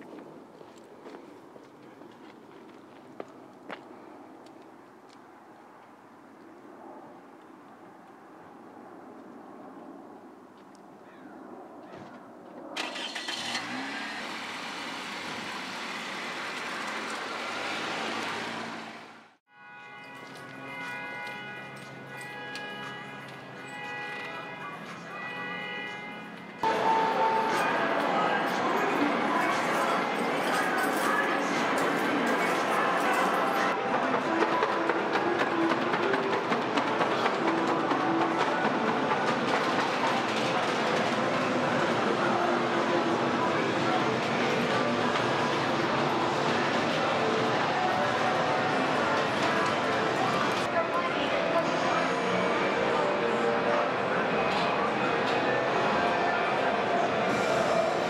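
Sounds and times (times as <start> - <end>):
car starter cranking: 12.8 - 14.9
hubbub of voices: 22.5 - 58.0.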